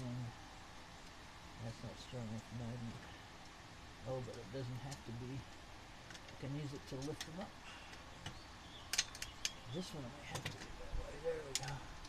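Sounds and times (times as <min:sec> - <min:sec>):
sharp metal clicks: 0:04.3 - 0:09.6, 0:11.5 - 0:11.8.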